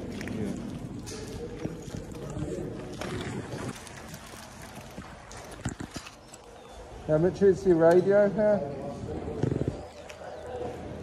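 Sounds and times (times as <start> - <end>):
people chattering: 0.0 - 5.0, 6.2 - 11.0.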